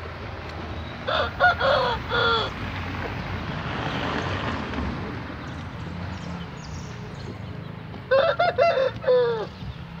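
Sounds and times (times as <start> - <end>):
rooster crowing: 1.1 - 2.5, 8.1 - 9.5.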